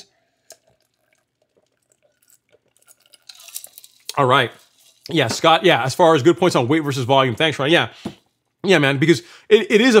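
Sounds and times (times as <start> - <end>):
person drinking: 0.0 - 5.1.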